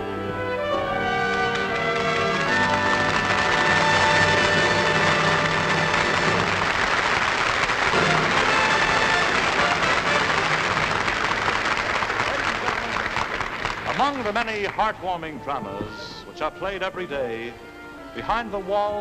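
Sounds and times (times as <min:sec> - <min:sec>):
orchestra with brass playing: 0:00.0 - 0:12.2, 0:13.9 - 0:19.0
audience applause: 0:00.8 - 0:15.2.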